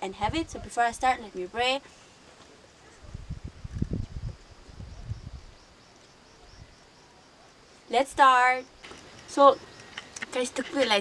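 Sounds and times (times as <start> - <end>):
wind buffeting microphone: 0.0 - 1.1, 3.0 - 5.7
faint insect chirps: 0.5 - 11.0.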